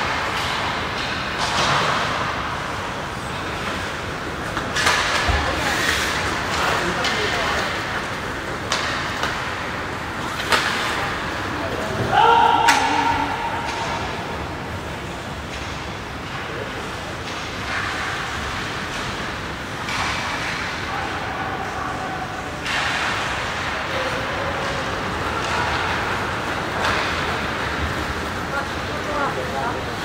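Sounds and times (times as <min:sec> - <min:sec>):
hockey play on ice: 0:00.0 - 0:30.0
stick and puck clacks: 0:00.0 - 0:30.0
spectators calling out: 0:11.9 - 0:14.2.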